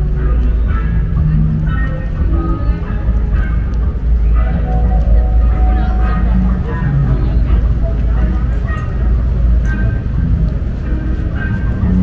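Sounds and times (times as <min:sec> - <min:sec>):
pedestrians talking indistinctly: 0:00.0 - 0:12.0
street traffic rumble: 0:00.0 - 0:12.0.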